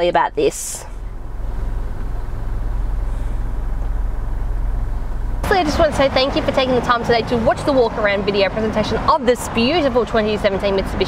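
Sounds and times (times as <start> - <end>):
car engine running low rumble: 0.0 - 11.0.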